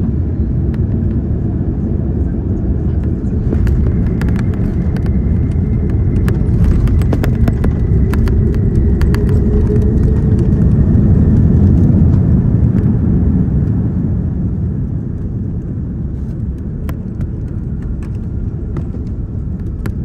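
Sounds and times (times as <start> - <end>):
airliner landing rumble: 0.0 - 20.0.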